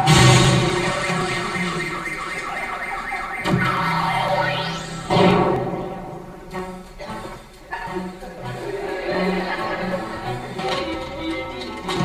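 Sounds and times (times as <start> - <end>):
alarm-like electronic tones: 0.0 - 6.3
rising electronic sweep: 0.0 - 6.6.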